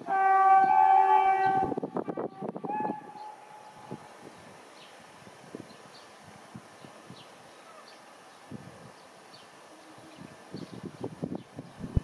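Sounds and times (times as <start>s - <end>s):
locomotive whistle blowing: 0.0s - 4.0s.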